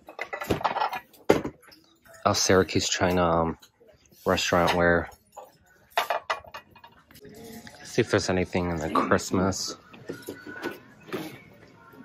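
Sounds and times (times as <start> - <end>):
plates clinking together: 0.0 - 1.9.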